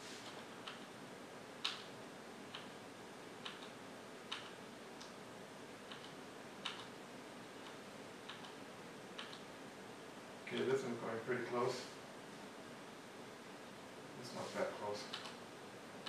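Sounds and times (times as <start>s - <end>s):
faint steady hiss: 0.0s - 16.0s
computer mouse clicking: 0.2s - 0.9s, 1.6s - 1.9s, 2.5s - 2.7s, 3.4s - 5.1s, 5.9s - 6.9s, 7.6s - 8.6s, 9.2s - 9.5s, 15.1s - 15.4s.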